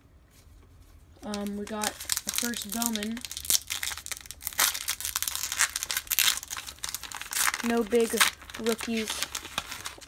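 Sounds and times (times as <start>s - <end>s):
foil wrapper tearing and crinkling: 1.2s - 10.0s.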